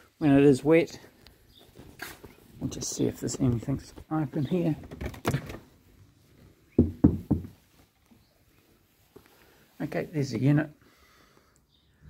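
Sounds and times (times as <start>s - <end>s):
knocking on door: 6.8s - 7.6s.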